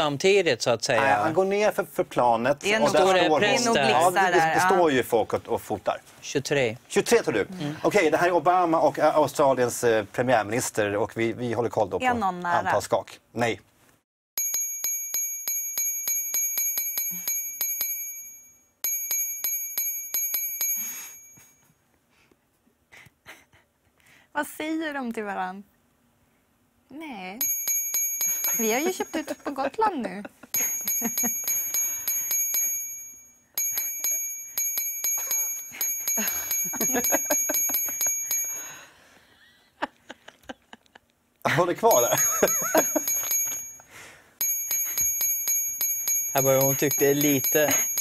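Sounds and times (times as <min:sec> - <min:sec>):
bell-like ding: 0:14.4 - 0:21.7, 0:27.4 - 0:29.5, 0:30.6 - 0:38.9, 0:41.9 - 0:48.0.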